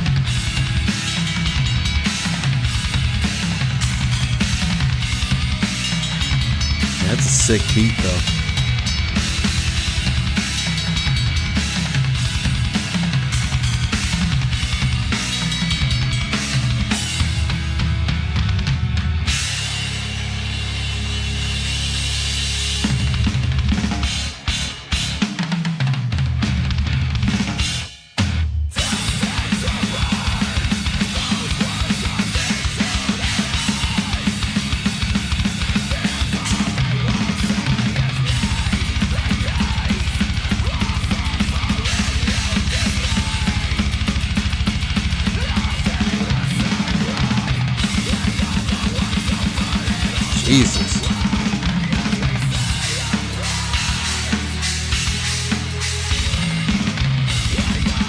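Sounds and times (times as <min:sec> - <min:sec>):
heavy metal music: 0:00.1 - 0:19.8, 0:28.8 - 0:58.0
fast drum beat: 0:07.0 - 0:08.4, 0:50.2 - 0:51.3.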